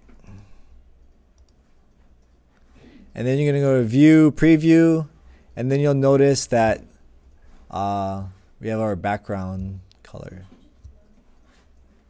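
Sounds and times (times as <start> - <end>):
faint computer mouse clicks: 1.0 - 2.7.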